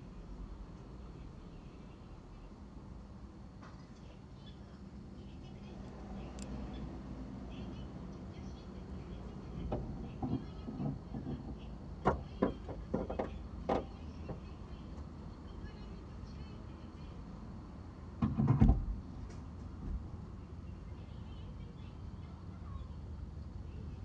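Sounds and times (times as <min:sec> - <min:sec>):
low steady rumble: 0:00.0 - 0:18.0.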